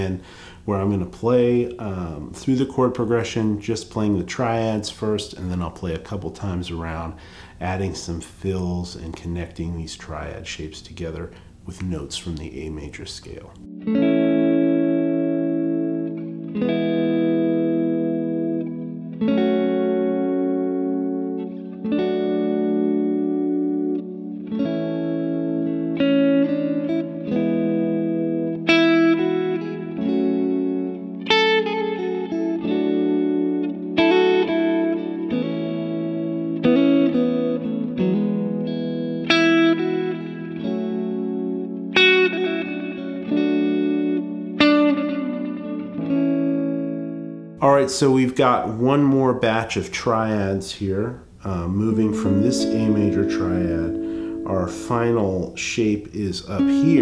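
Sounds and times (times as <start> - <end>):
electric guitar chords and fills: 0.0 - 8.2, 13.6 - 47.9, 51.2 - 57.0.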